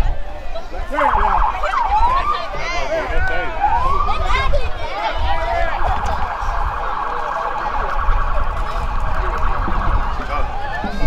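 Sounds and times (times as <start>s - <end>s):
wind rumble on microphone: 0.0s - 11.0s
electronic siren warbling: 3.6s - 4.4s, 5.8s - 11.0s.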